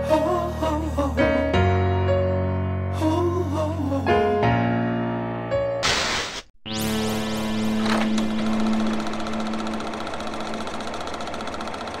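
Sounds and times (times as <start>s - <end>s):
mechanical projector clatter: 7.8s - 12.0s.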